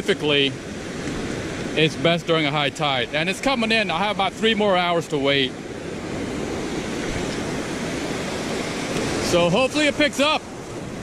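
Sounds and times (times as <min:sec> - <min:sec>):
ocean surf breaking on beach: 0:00.0 - 0:11.0.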